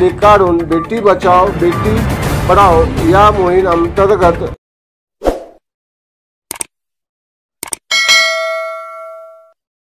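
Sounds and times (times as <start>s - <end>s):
notification bell ding: 7.9s - 9.6s.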